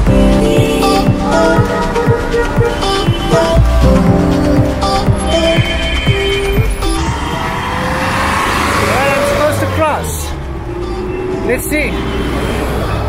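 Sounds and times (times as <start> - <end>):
traffic engines rumbling: 0.0 - 13.0.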